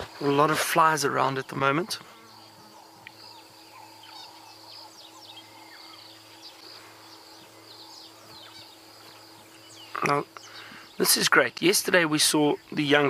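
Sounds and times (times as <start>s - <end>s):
faint low hum: 0.0s - 13.0s
high insect drone: 0.0s - 13.0s
bird chirps: 1.2s - 11.3s.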